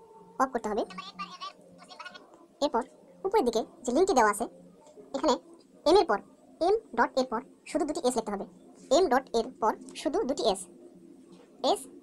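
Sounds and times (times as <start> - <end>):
wavering voice from phone video: 0.0 - 12.0.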